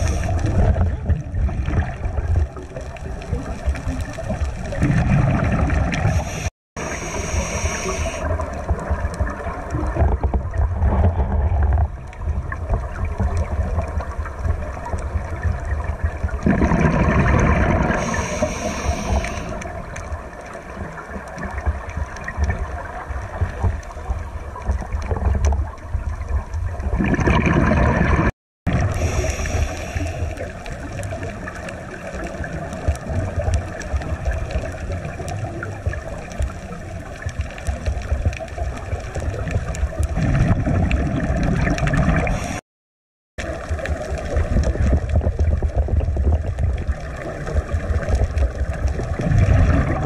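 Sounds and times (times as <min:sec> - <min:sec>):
scuba exhalation bubbles: 0:00.0 - 0:23.6, 0:26.7 - 0:36.1, 0:37.7 - 0:42.6, 0:43.4 - 0:50.0
underwater low rumble: 0:00.0 - 0:42.6, 0:43.4 - 0:50.0.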